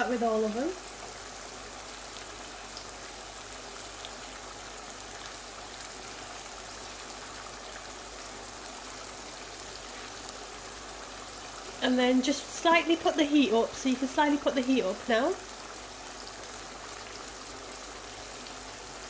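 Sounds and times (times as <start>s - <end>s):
sauce bubbling and sizzling: 0.0s - 19.0s.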